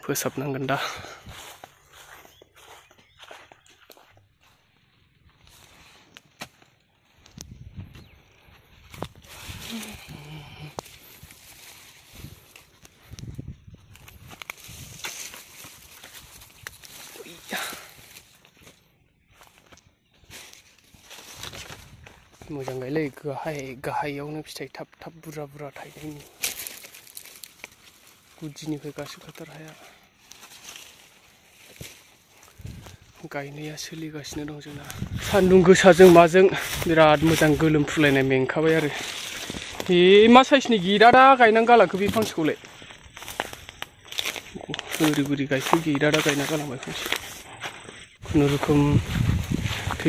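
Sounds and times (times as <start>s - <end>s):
footsteps rustling through dry grass: 0.0s - 50.0s.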